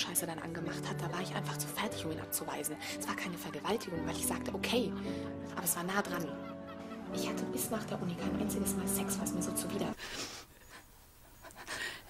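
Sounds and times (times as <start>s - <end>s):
woman breathing and gasping: 10.0s - 10.8s, 11.5s - 12.0s.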